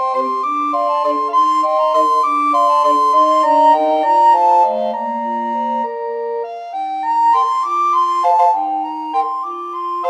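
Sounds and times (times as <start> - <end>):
recorder quartet playing: 0.0 - 10.0.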